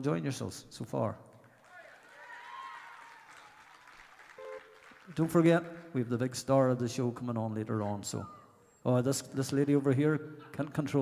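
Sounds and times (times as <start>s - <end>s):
audience voices and cheers: 1.6s - 4.4s.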